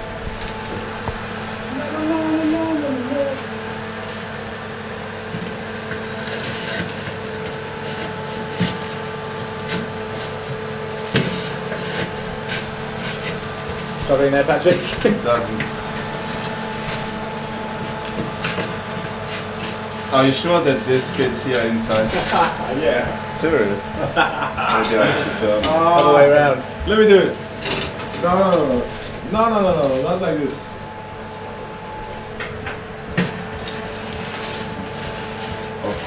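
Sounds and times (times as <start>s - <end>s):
steady fan hum: 0.0s - 36.0s.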